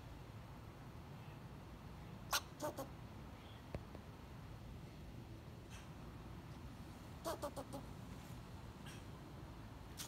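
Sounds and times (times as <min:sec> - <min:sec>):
squirrel barking and chirping: 0:02.3 - 0:03.0, 0:07.2 - 0:07.9.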